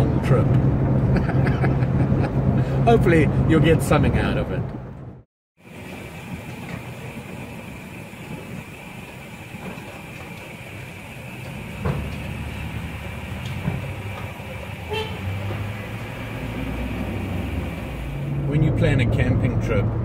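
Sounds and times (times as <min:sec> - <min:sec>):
road and engine noise in cab: 0:00.0 - 0:20.0.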